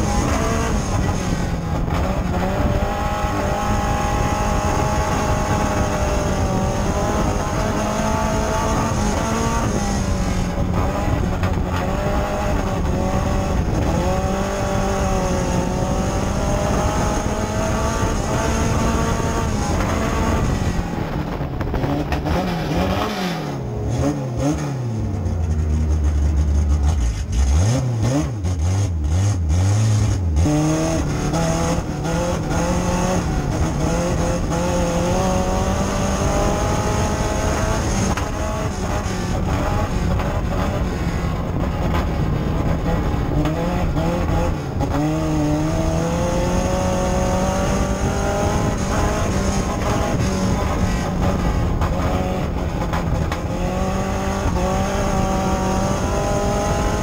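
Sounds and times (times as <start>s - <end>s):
race car engine: 0.0s - 57.0s.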